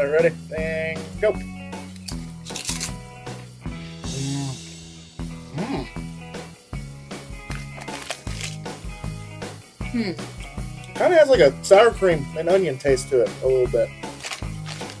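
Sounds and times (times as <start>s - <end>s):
background music: 0.0s - 15.0s
people crunching potato chips: 7.5s - 8.7s, 14.1s - 15.0s.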